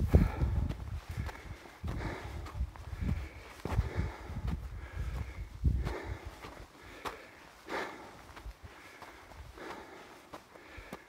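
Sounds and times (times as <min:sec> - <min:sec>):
footsteps crunching on snow: 0:00.0 - 0:11.0
soft breath: 0:00.0 - 0:11.0.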